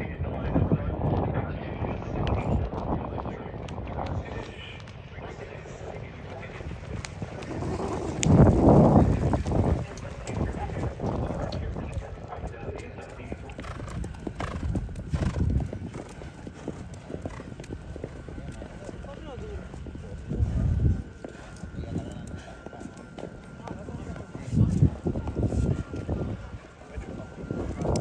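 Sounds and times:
people talking in background: 0.0 - 28.0
horse hooves clip-clopping: 2.2 - 28.0.

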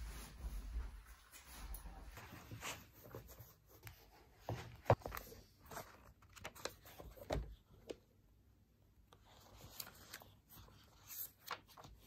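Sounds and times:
rustling and handling noises: 0.0 - 8.4, 9.0 - 12.0.

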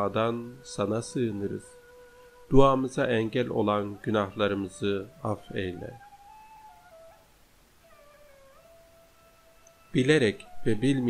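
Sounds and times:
soft wind instrument melody: 0.0 - 11.0.

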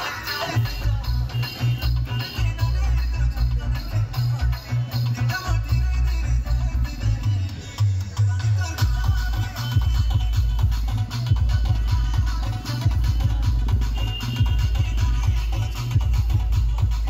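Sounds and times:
loud dance music: 0.0 - 17.0.

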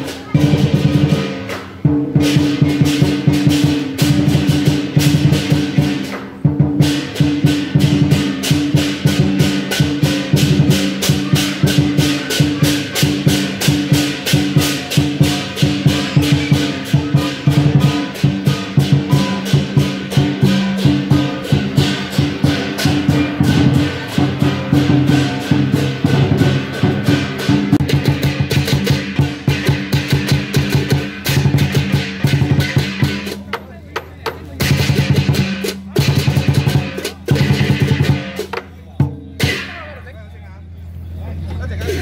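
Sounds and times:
crashing cymbals: 0.0 - 33.5
big drum beaten fast: 0.0 - 33.6, 34.2 - 40.0.

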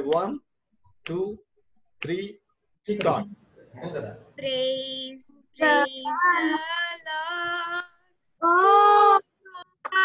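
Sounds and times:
girl singing unaccompanied: 4.4 - 10.0.

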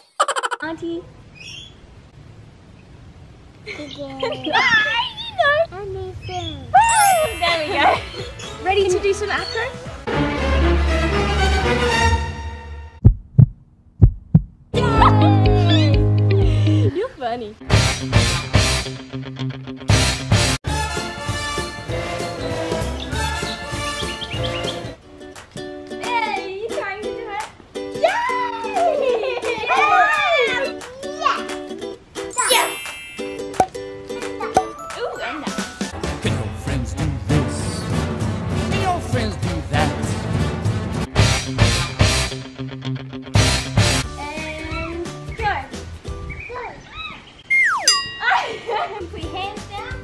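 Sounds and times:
falling whistle glide: 6.8 - 7.6, 47.5 - 48.0
bright ding: 6.9 - 7.7, 32.4 - 33.5, 47.8 - 48.5
background music: 6.9 - 13.0, 14.8 - 29.0, 29.8 - 46.2
upbeat background music: 20.0 - 25.0, 32.4 - 42.3.

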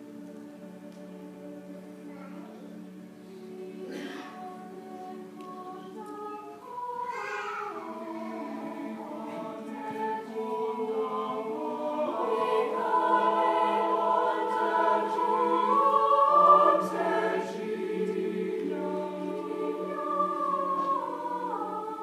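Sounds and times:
mixed choir singing chords: 0.0 - 22.0.

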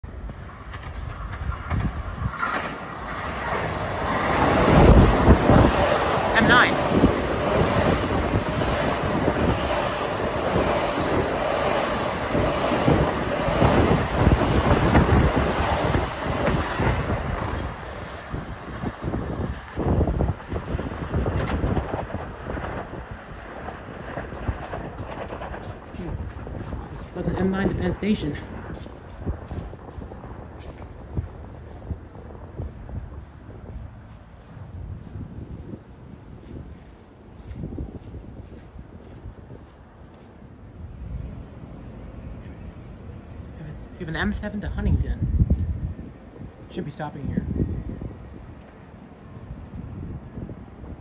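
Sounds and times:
train rumbling past: 0.0 - 51.0
wheels clicking over rail joints: 0.1 - 27.7.

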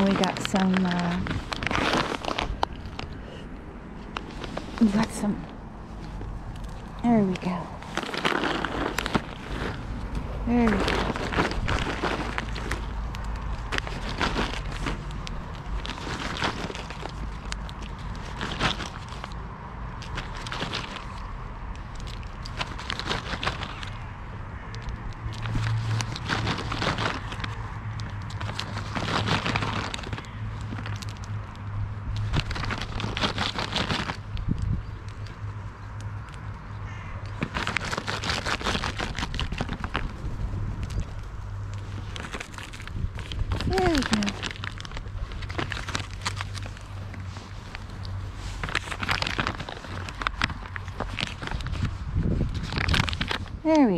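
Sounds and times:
paper bag crinkling: 0.0 - 3.4, 4.0 - 24.1, 25.0 - 35.5, 37.3 - 53.9.

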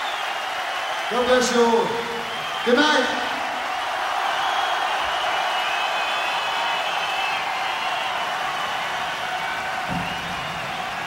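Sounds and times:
concert crowd cheering and applauding: 0.0 - 11.0
high whistles: 0.0 - 11.0.

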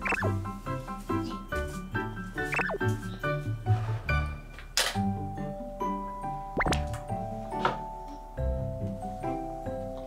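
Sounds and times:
light music with mallet notes: 0.0 - 10.0.

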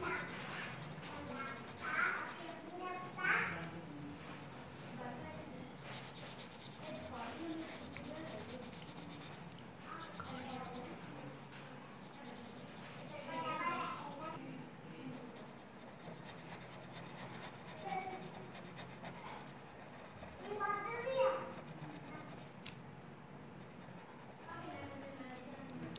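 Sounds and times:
marker scratching on paper: 0.0 - 4.5, 5.8 - 11.0, 11.9 - 14.4, 15.1 - 22.6, 23.6 - 25.5.

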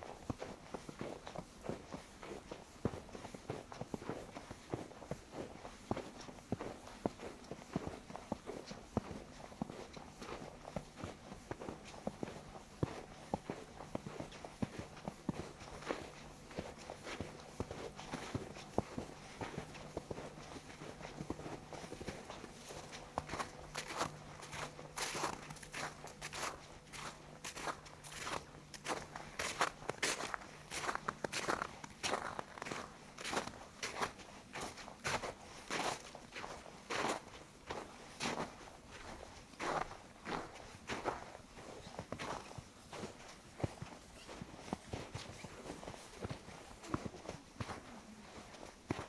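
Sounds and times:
faint low hum: 0.0 - 49.0
footsteps in snow: 0.1 - 49.0.

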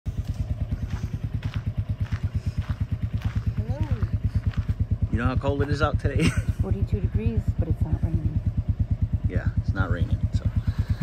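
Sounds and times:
motorcycle engine idling: 0.1 - 11.0.

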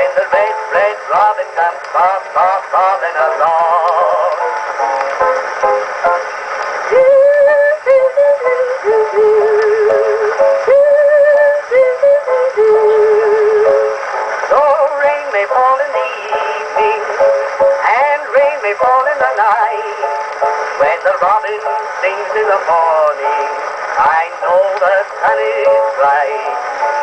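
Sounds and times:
phonograph playing old record: 0.0 - 27.0.

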